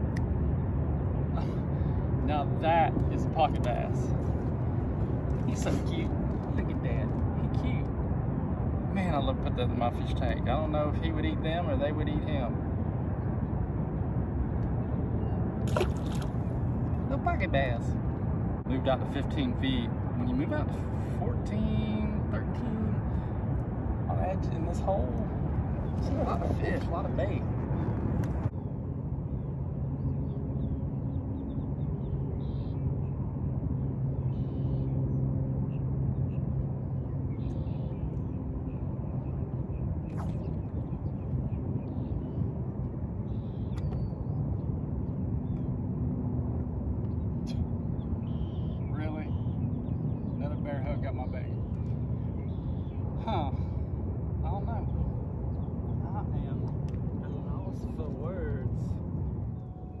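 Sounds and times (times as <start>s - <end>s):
mechanical rumble and hum: 0.0s - 60.0s.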